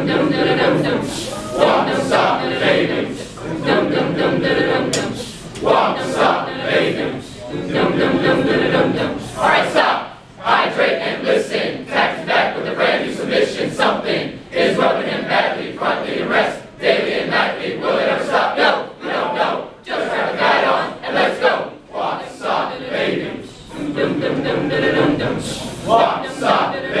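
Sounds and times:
group singing in unison: 0.0s - 27.0s.

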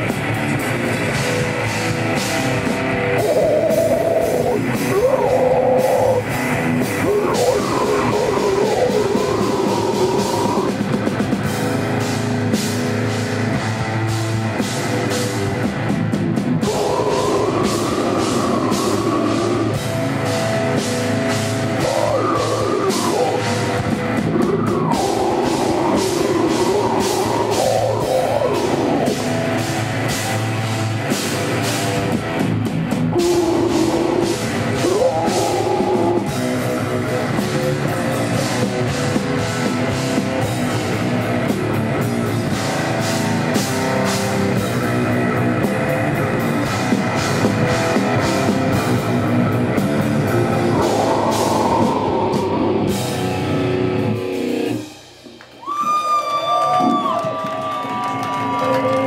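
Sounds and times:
heavy metal band playing live: 0.0s - 55.4s
distorted guitars: 0.0s - 59.0s
pounding drum kit: 0.0s - 59.0s
wavering pitched line: 3.1s - 10.9s, 16.6s - 30.4s, 33.1s - 38.7s, 49.8s - 54.8s.

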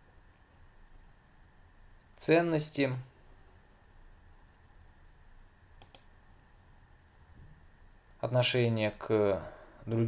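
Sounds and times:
faint computer mouse clicks: 5.8s - 6.1s.

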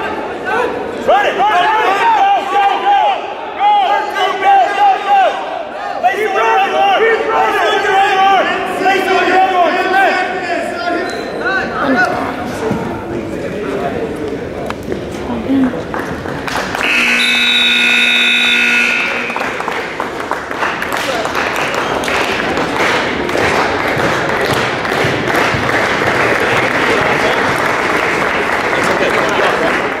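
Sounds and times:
crowd applauding and cheering: 15.9s - 30.0s
scoreboard buzzer tone: 16.8s - 19.6s.

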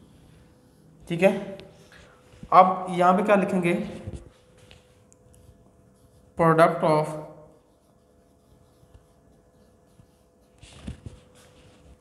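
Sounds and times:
marker scratching on whiteboard: 0.0s - 1.8s, 5.4s - 12.0s.

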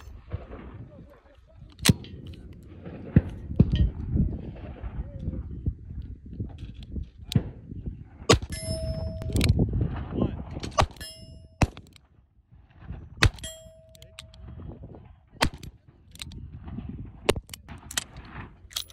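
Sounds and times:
bullet hitting steel target: 8.3s - 9.5s, 10.7s - 11.9s, 13.2s - 14.4s.

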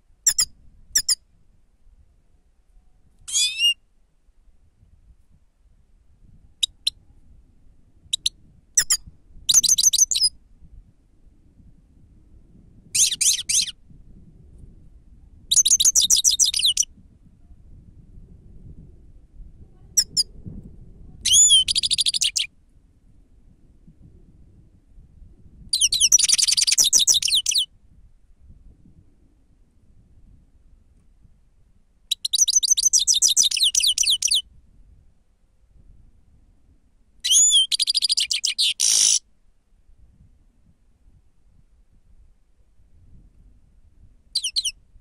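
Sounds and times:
high twittering birdsong: 0.3s - 1.2s, 8.1s - 10.3s, 13.0s - 13.8s, 15.5s - 16.9s, 21.3s - 22.5s, 25.7s - 27.7s, 32.1s - 34.4s, 37.2s - 39.2s, 44.4s - 44.8s.

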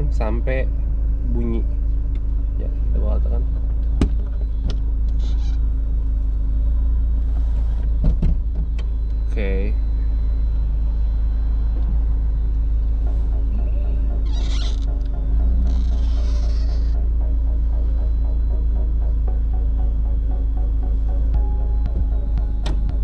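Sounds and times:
low rumble: 0.0s - 23.0s.

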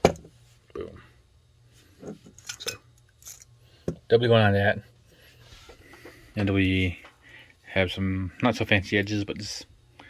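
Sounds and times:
metal parts clinking in glass jar: 2.4s - 3.5s.

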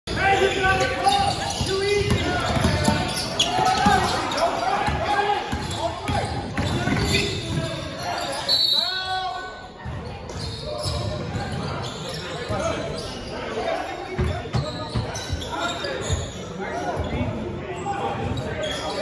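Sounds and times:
players shouting: 0.1s - 9.6s.

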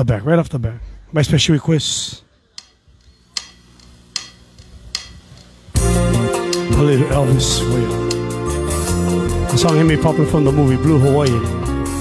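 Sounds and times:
sharp clicks with ringing tail: 2.6s - 5.8s.

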